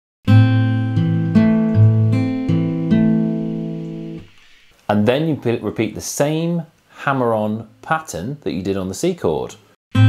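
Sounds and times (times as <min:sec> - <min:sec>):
acoustic guitar fingerpicking: 0:00.3 - 0:04.6.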